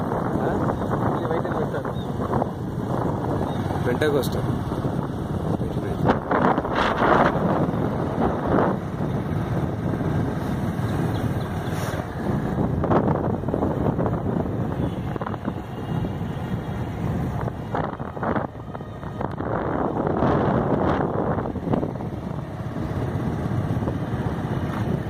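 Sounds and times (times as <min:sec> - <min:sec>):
vehicle and road noise: 0:00.0 - 0:25.0
wind rushing over microphone: 0:00.0 - 0:25.0.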